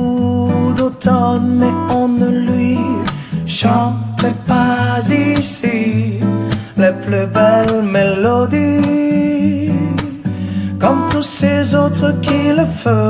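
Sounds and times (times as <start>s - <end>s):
acoustic guitars strummed: 0.0s - 13.0s
person singing: 0.0s - 13.0s.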